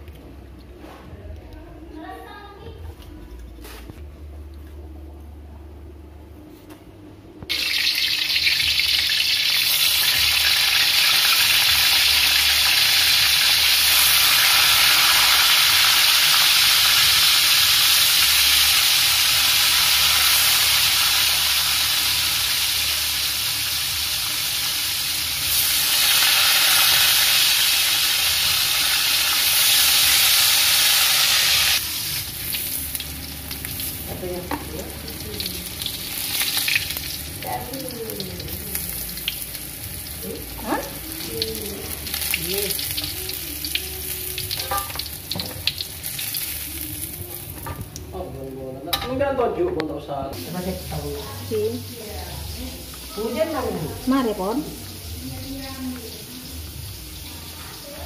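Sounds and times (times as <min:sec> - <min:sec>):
tofu sizzling in hot oil: 0:07.5 - 0:47.6, 0:50.4 - 0:58.0.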